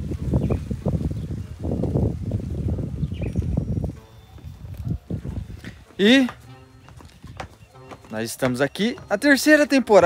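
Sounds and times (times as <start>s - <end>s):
wind buffeting microphone: 0.0s - 6.0s.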